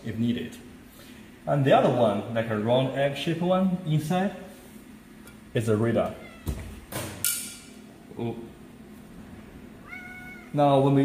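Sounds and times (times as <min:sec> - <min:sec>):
cat meowing: 0:06.1 - 0:06.9, 0:09.8 - 0:10.6.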